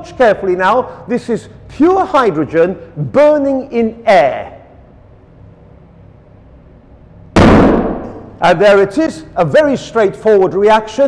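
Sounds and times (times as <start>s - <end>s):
balloon bursting bang: 7.4s - 8.4s.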